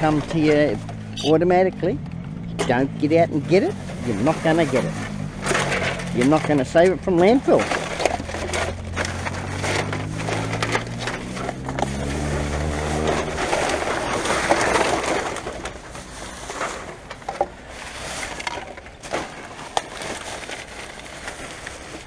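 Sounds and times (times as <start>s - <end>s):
packaging clicks and clatters: 0.0s - 1.2s, 3.9s - 22.0s
plastic bags rustling: 0.0s - 1.7s, 2.7s - 22.0s.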